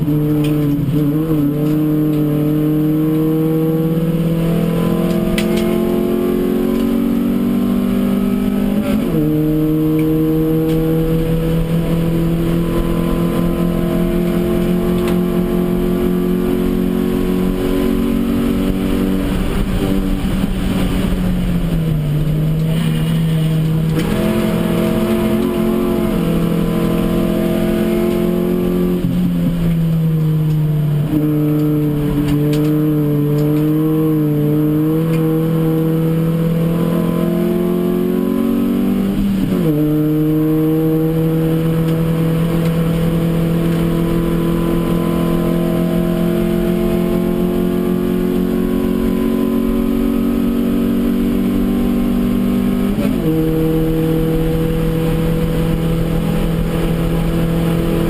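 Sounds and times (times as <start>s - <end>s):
race car engine from cabin: 0.0s - 58.0s.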